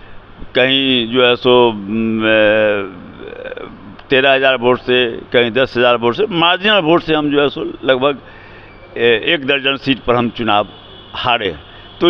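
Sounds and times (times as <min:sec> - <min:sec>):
man's drawn-out hesitation sound: 0:00.5 - 0:08.3, 0:09.0 - 0:12.0.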